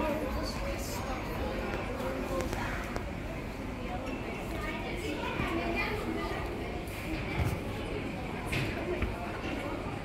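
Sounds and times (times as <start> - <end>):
children chattering: 0.0 - 10.0
shopping centre hum: 0.0 - 10.0.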